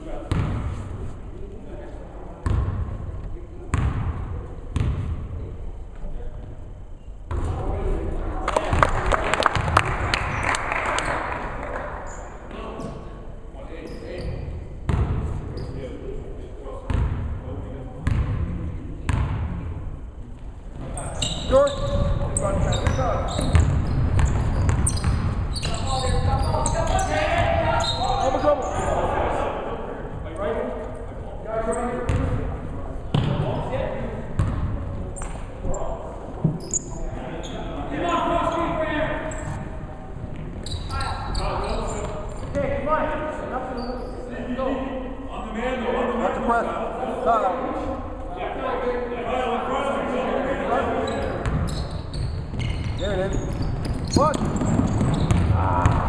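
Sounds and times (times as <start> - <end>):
basketball bouncing on hardwood floor: 53.8 - 56.0
people calling out in gym: 55.4 - 56.0.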